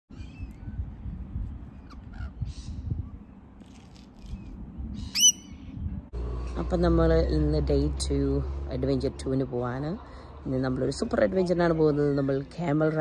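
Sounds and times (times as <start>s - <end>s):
parrot screeching: 5.1s - 5.6s.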